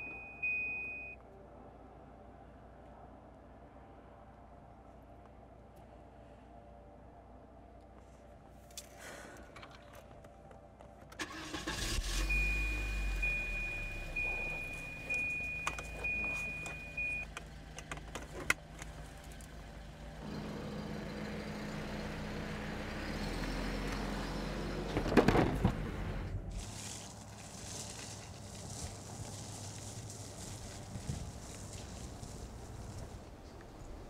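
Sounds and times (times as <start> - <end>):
high warning chime: 0.0 - 1.2, 12.0 - 17.3
car engine starting and running: 11.1 - 26.7.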